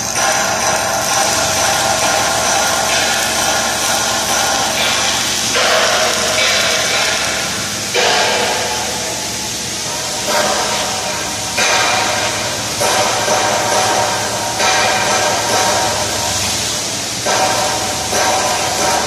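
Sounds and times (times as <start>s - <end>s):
arc welding hiss and crackle: 0.0s - 19.0s.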